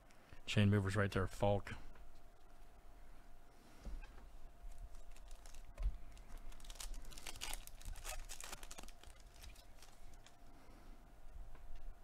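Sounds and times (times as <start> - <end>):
foil wrapper crinkling and tearing: 4.7 - 10.4.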